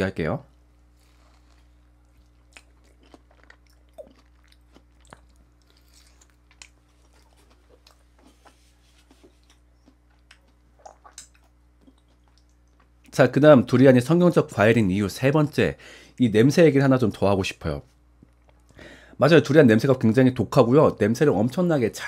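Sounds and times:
low steady hum: 0.0s - 22.0s
wet chewing mouth clicks: 9.3s - 12.9s.

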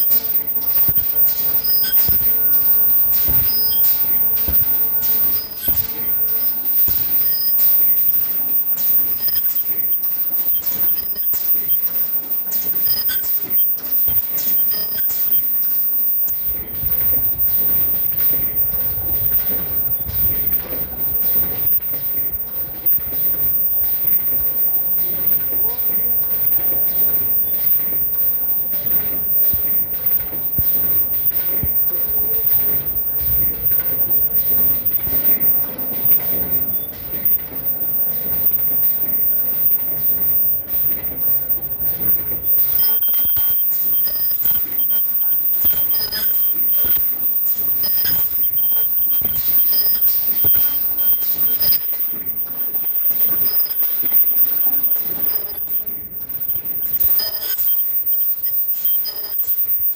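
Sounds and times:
machinery rhythmic clicking: 0.0s - 59.9s
indistinct voices: 12.5s - 46.9s.

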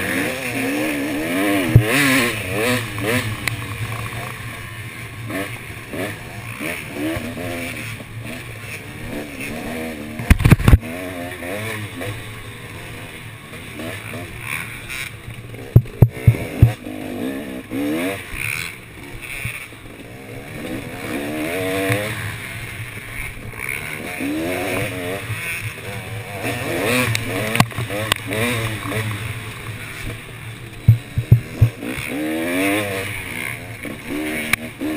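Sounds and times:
dirt bike engine revving: 0.0s - 34.9s
sharp knocks: 15.8s - 16.8s, 30.8s - 31.8s.

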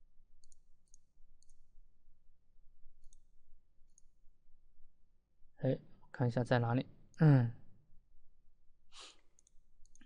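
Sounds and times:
computer mouse clicks: 0.4s - 1.7s, 3.0s - 4.2s, 9.2s - 10.0s
short breath: 8.9s - 9.3s.

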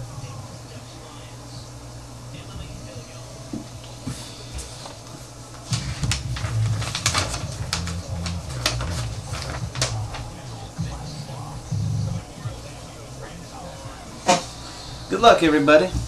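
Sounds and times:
papers and phone handling clicks: 5.6s - 10.3s.

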